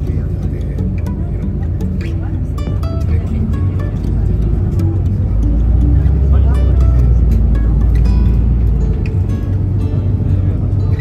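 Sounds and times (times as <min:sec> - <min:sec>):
bus engine low rumble: 0:00.0 - 0:11.0.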